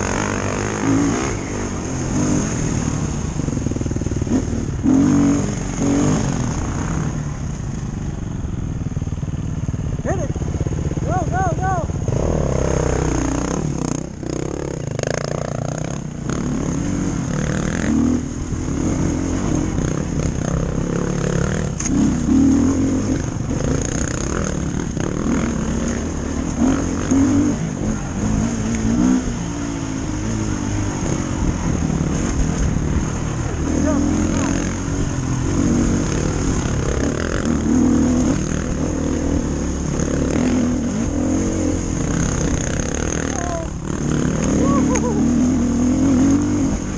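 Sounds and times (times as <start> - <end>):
dirt bike engine revving: 0.0 - 8.2, 8.8 - 46.9.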